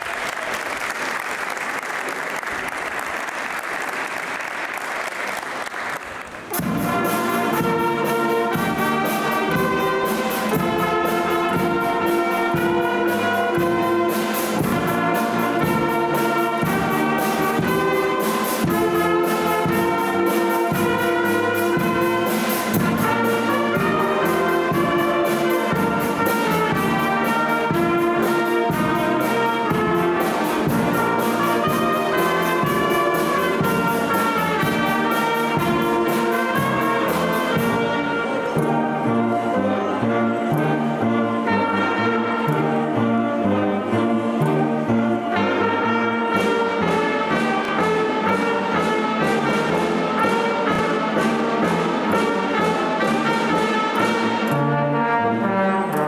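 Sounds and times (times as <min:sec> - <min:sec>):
wind band playing: 0:00.0 - 0:56.0
percussion beat: 0:06.4 - 0:38.9.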